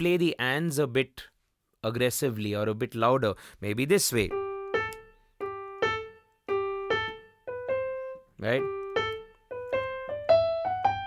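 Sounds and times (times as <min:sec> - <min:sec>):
digital piano single notes: 0:04.2 - 0:11.0.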